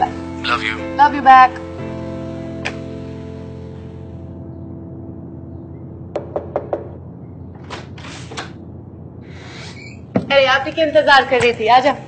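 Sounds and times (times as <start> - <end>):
knocks on a door: 6.2 - 7.0.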